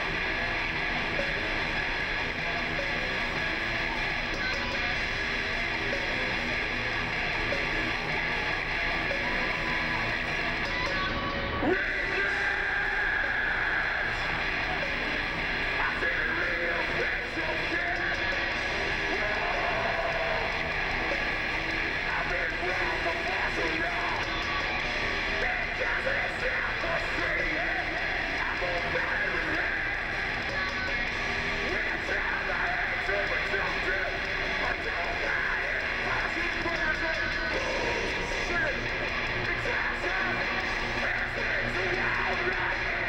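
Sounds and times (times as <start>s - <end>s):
distorted electric guitar: 0.0s - 43.0s
heavy metal band playing live: 0.0s - 43.0s.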